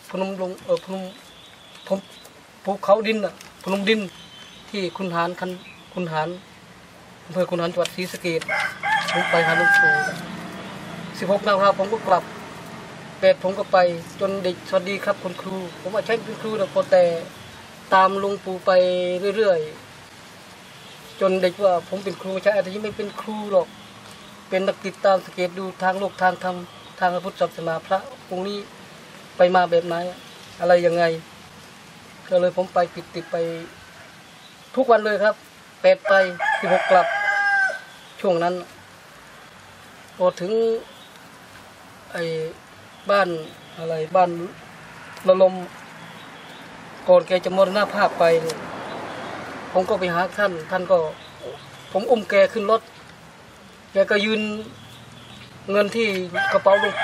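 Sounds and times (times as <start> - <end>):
rooster crowing: 8.4 - 11.0, 33.0 - 34.4, 36.0 - 38.1, 56.2 - 57.0.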